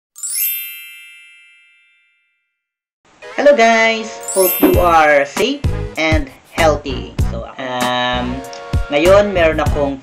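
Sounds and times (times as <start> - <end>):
bright chime ding: 4.3 - 5.1.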